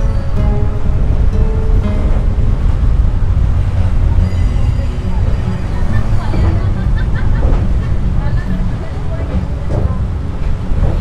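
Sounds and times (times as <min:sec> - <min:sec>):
faint background music: 0:00.0 - 0:11.0
train rumbling on a bridge: 0:00.0 - 0:11.0
wind buffeting microphone: 0:00.0 - 0:11.0.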